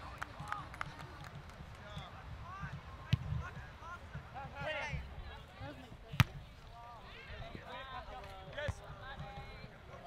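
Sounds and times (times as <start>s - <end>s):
soccer ball kicked: 6.1s - 6.5s.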